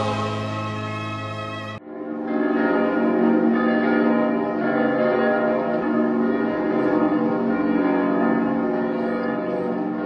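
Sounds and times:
church bells pealing: 0.0 - 10.0.

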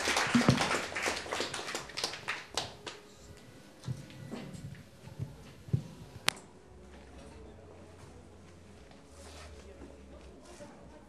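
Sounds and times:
audience applauding: 0.0 - 5.0.

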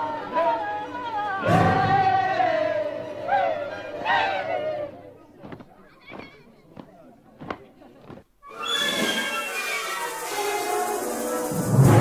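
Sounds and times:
full orchestra playing: 9.0 - 12.0.

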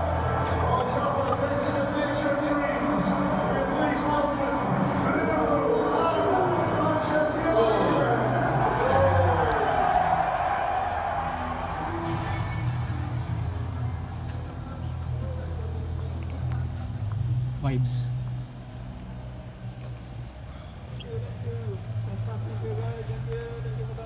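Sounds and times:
music over public address: 0.0 - 24.0.

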